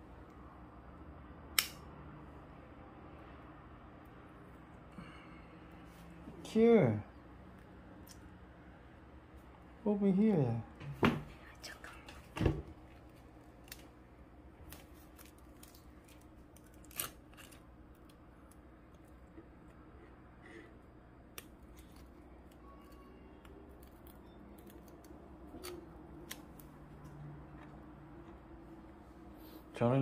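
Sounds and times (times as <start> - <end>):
faint low hum: 0.0 - 30.0
scissors snipping twine: 1.6 - 1.8, 23.7 - 27.1.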